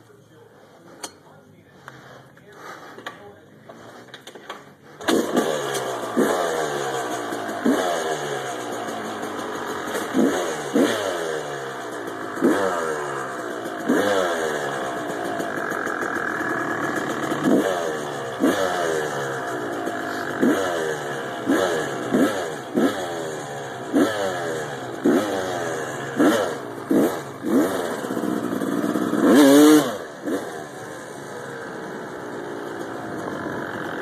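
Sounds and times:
dirt bike engine revving: 1.8s - 34.0s.

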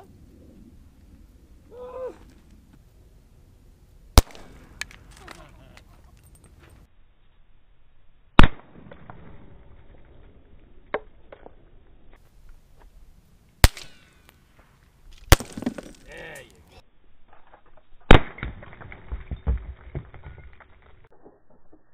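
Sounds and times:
sharp gunshots: 4.2s - 4.8s, 8.4s - 9.7s, 13.6s - 14.2s, 15.3s - 16.0s, 18.1s - 18.8s.

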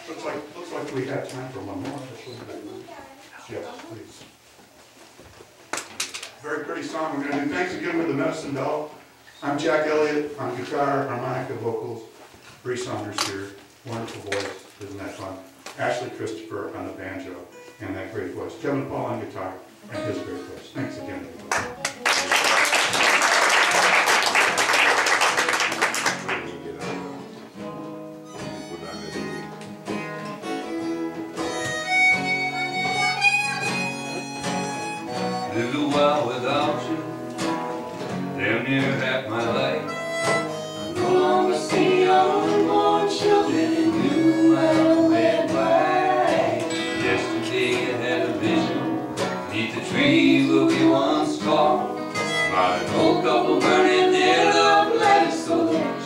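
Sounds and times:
acoustic guitars: 0.0s - 56.0s
harmonica melody: 19.8s - 21.4s, 27.0s - 37.2s, 39.4s - 56.0s
audience applause: 21.5s - 26.5s.

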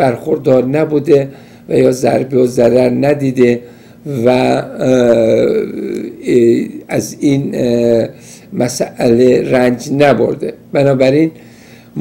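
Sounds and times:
man speaking: 0.0s - 11.4s.

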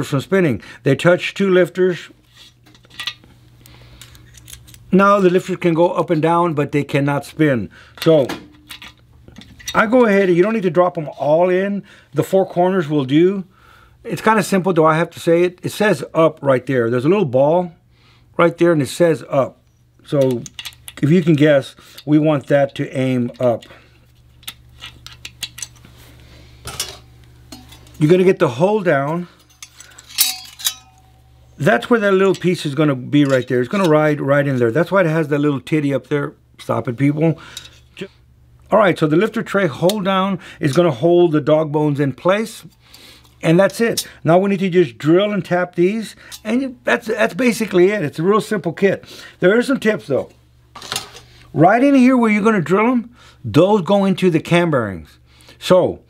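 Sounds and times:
low steady hum: 0.0s - 56.0s
light metallic clicks and clinks: 29.3s - 31.2s
metal clatter: 29.4s - 31.2s.

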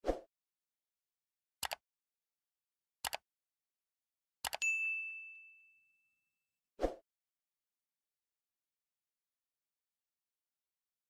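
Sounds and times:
high bell ding: 4.6s - 6.2s.

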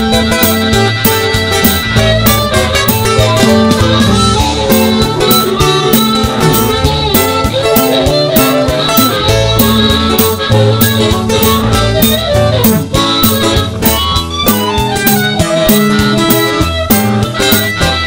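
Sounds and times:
guitar-led band music: 0.0s - 18.0s.

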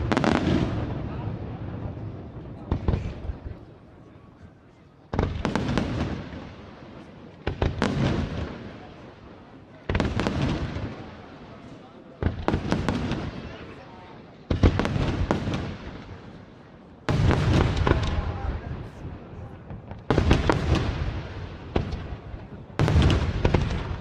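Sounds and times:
firework crackling: 0.0s - 1.2s, 14.5s - 19.0s, 19.8s - 24.0s.

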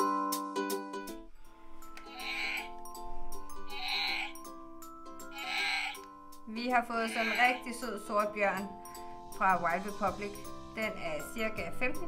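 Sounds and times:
light background music: 0.0s - 12.0s
recorded bear roar: 2.0s - 2.7s, 3.7s - 4.4s, 5.3s - 6.0s.

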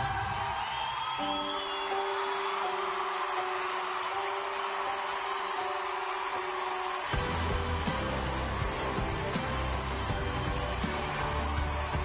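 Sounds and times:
crowd cheering and applause: 0.0s - 12.0s
whistle: 0.6s - 2.8s.

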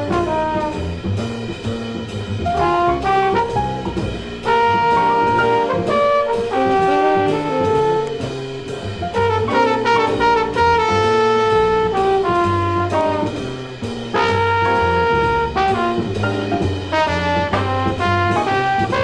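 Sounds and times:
bass and drums: 0.0s - 19.0s
jazz horns playing held notes: 0.0s - 19.0s.

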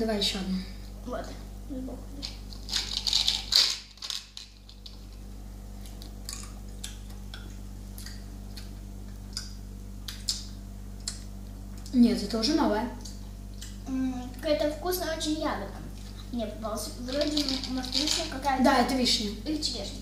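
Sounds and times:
steady low hum: 0.0s - 20.0s
jelly beans rattling in glass jar: 2.2s - 5.2s, 17.0s - 18.6s.

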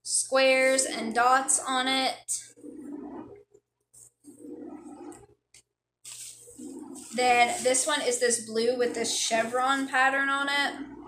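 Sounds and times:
fabric rustling: 6.1s - 10.0s.

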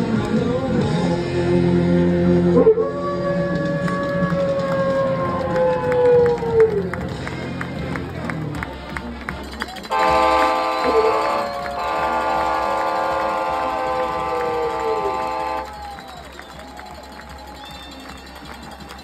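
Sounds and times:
stadium crowd noise: 0.0s - 19.0s
marching band horns chord: 9.8s - 15.9s.

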